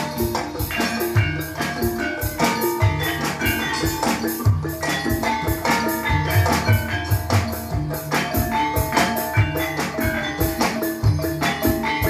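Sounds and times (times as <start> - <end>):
metallophones ringing: 0.0 - 12.0.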